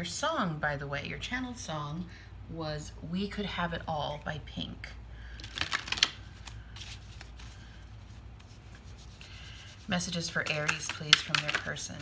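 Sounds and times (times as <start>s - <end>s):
cards being shuffled: 5.4s - 12.0s.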